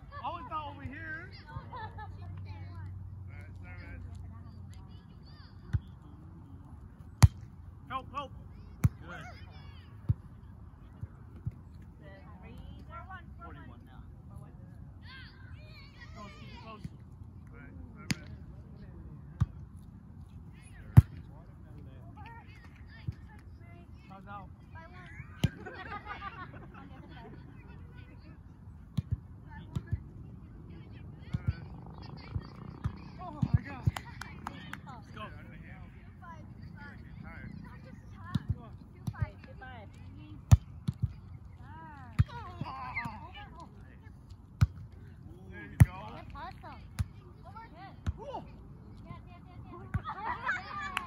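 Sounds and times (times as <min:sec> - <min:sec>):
volleyball slaps: 0:07.2 - 0:07.5, 0:32.8 - 0:34.8
voices calling: 0:30.5 - 0:40.4
voices calling out: 0:31.5 - 0:35.0.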